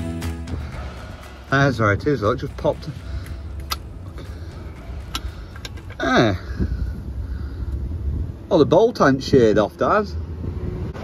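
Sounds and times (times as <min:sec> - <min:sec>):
low rumble: 0:00.0 - 0:08.5.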